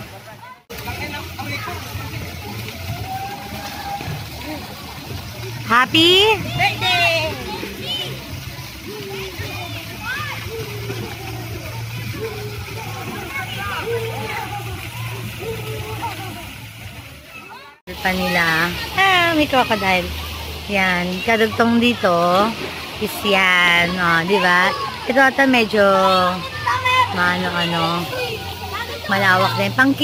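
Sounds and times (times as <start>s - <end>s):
water jets splashing: 0.0s - 30.0s
children's voices: 6.2s - 30.0s.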